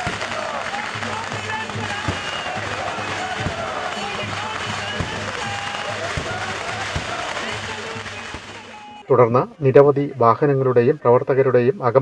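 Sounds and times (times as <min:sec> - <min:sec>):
lively music with drum beat: 0:00.0 - 0:09.0
sharp bangs: 0:00.0 - 0:09.0
crowd noise: 0:00.0 - 0:12.0.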